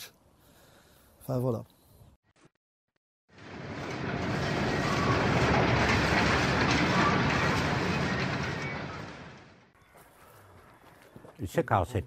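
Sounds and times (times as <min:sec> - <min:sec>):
industrial machinery rumbling: 0:03.3 - 0:09.8.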